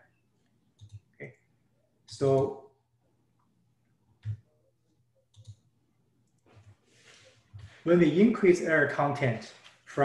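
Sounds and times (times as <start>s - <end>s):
computer mouse clicks: 0.8s - 1.3s, 5.3s - 6.7s.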